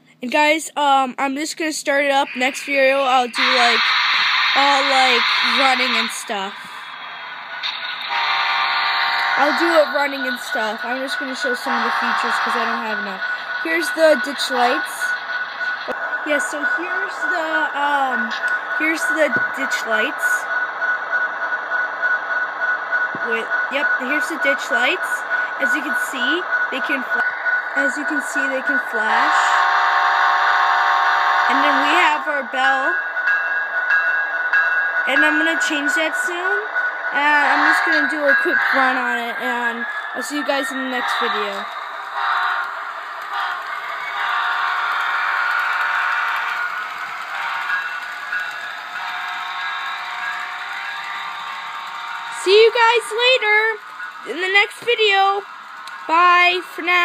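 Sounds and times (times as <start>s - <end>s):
model locomotive idle sound: 2.4s - 20.4s, 34.1s - 57.0s.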